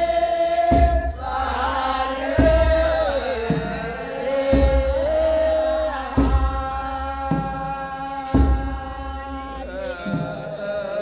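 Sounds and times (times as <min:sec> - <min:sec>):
sistrum jingles: 0:00.0 - 0:10.8
voices chanting: 0:00.0 - 0:11.0.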